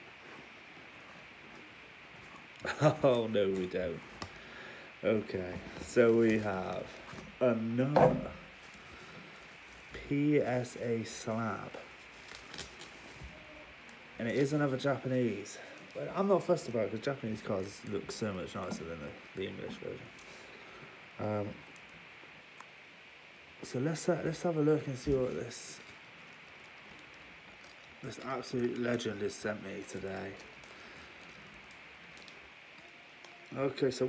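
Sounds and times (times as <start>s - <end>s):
bubble wrap crinkling: 0.0s - 22.6s, 24.3s - 34.0s
faint room tone hiss: 0.0s - 34.0s.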